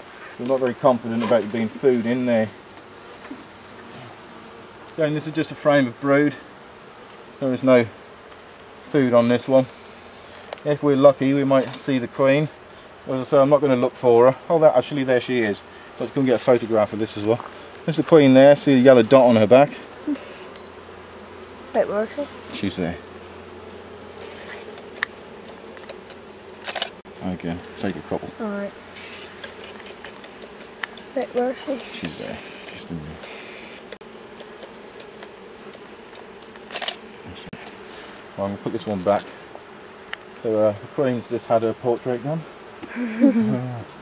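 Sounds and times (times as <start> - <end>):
honeybees humming: 0.0 - 44.0
sharp clicks: 26.6 - 27.0.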